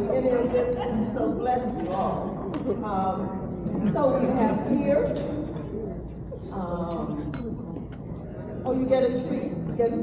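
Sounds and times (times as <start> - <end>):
glassware clinking: 1.7 - 2.3, 5.1 - 5.7, 6.9 - 8.0.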